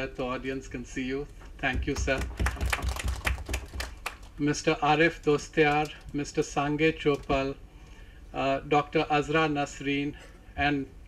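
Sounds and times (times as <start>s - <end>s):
audience clapping: 1.9s - 4.4s, 5.3s - 6.2s.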